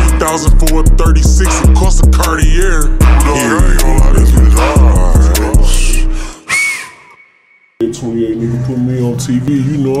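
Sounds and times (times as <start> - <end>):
slowed hip-hop beat: 0.0 - 7.1
high whistle-like sound: 6.4 - 7.8.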